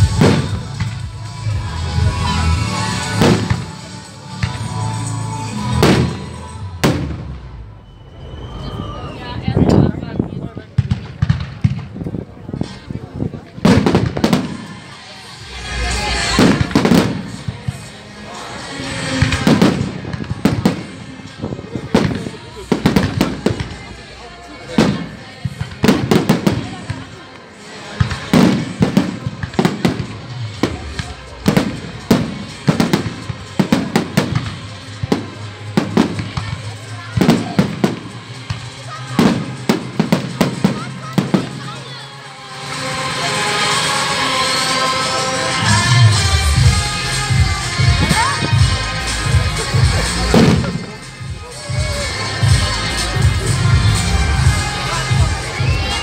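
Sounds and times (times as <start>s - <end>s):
fireworks bursting: 0.0s - 56.0s.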